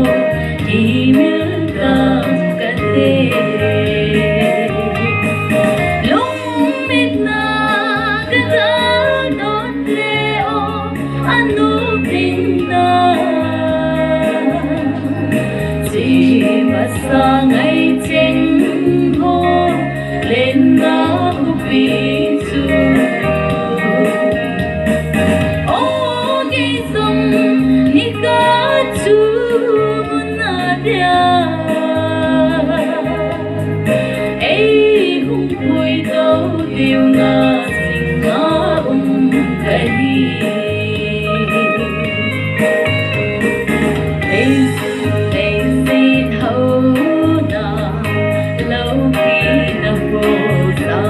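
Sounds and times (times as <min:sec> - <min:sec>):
woman singing: 0:00.0 - 0:43.0, 0:43.6 - 0:51.0
instrumental accompaniment: 0:00.0 - 0:51.0.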